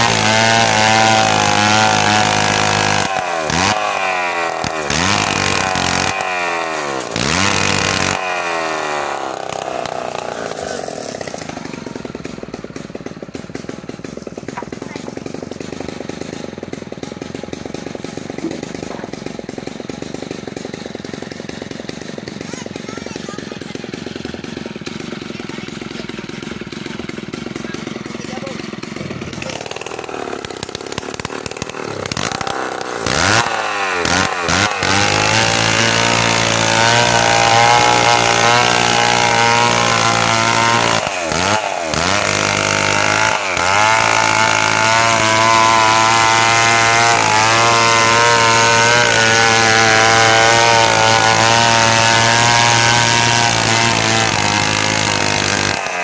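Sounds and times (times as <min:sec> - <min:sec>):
chainsaw cutting through wood: 0:00.0 - 0:56.0.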